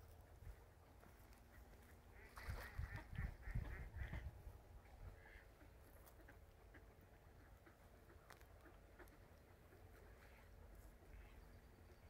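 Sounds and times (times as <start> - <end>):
waterfowl calling: 1.5 - 4.3, 5.0 - 12.0.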